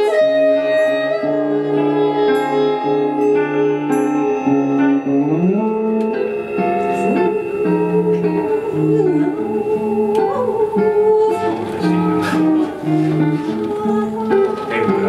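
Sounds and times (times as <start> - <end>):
electric guitar: 0.0 - 15.0
saxophone: 0.0 - 15.0.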